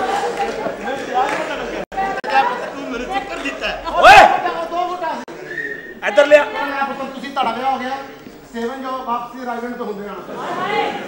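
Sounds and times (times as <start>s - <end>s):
voices talking over one another: 0.0s - 11.0s.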